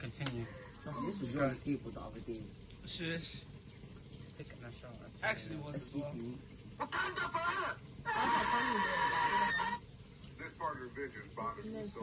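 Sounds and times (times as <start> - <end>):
loud shrill cry: 6.8 - 9.8.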